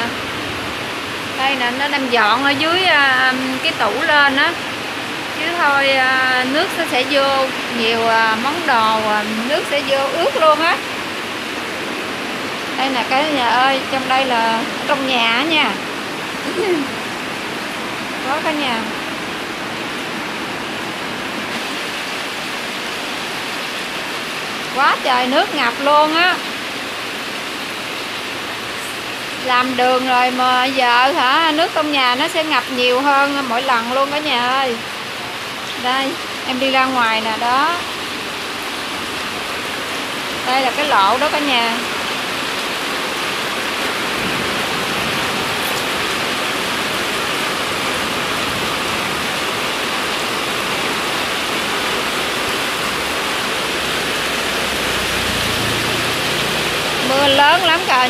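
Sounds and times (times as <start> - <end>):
heavy rain pouring: 0.0 - 58.0.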